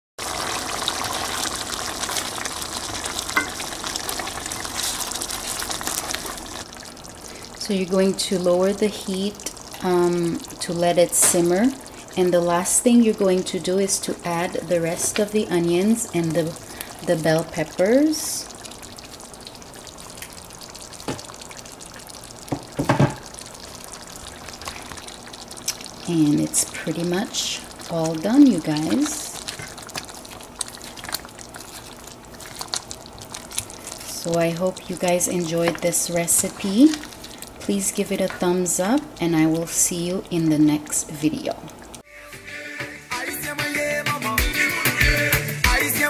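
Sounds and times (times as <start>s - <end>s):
stew bubbling in a pot: 0.2s - 42.1s.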